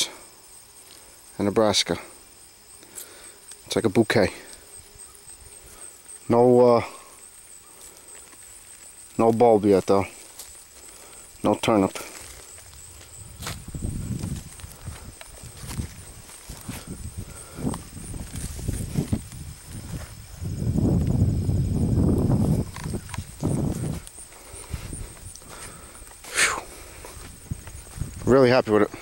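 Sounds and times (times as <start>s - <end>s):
footsteps through crops: 7.0s - 29.0s
microphone handling rumble: 12.6s - 26.3s, 26.9s - 28.4s.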